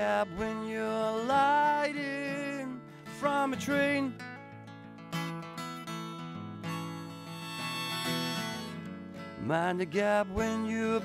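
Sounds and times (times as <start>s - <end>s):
acoustic guitar strumming: 0.0s - 11.0s
harmonica chord: 6.5s - 8.9s.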